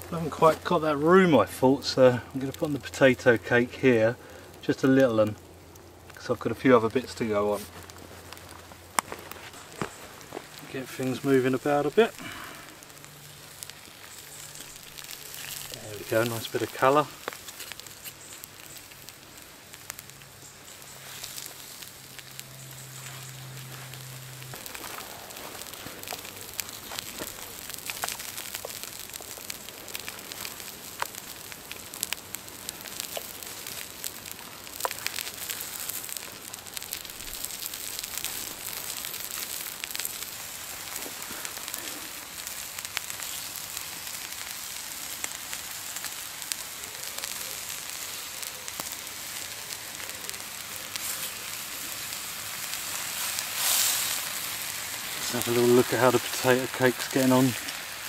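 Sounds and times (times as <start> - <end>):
sausages sizzling in oil: 0.0 - 58.0
pops and crackles: 4.3 - 58.0.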